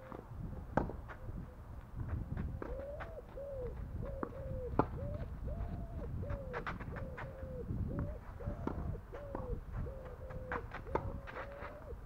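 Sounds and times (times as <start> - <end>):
bird calling: 2.7 - 12.0.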